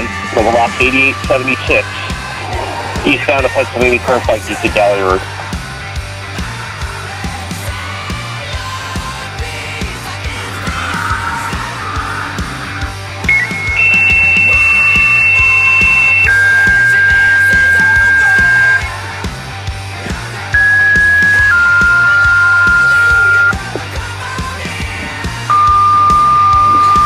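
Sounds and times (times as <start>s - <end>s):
background music: 0.0s - 27.0s
paging tone beeps: 13.3s - 19.0s, 20.6s - 23.8s, 25.5s - 27.0s.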